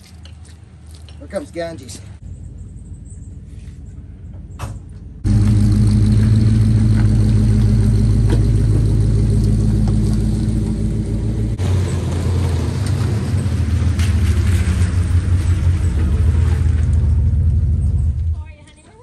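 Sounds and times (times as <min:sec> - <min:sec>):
pickup truck engine driving past: 0:05.2 - 0:18.4.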